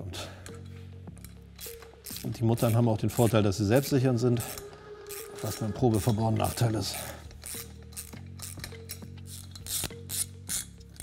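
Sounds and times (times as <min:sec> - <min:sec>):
socket ratchet clicking: 0:01.2 - 0:03.4, 0:06.0 - 0:11.0.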